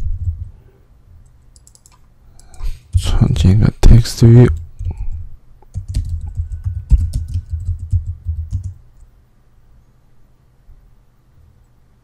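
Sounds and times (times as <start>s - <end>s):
keyboard typing: 0.0s - 0.5s, 1.2s - 3.2s, 4.5s - 9.1s.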